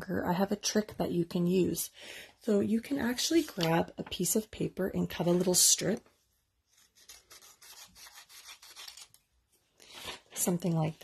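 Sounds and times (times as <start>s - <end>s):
paper crinkling: 6.7s - 9.2s.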